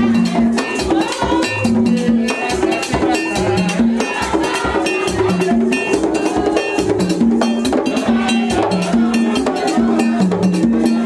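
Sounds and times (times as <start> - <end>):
hand drums: 0.0 - 11.0.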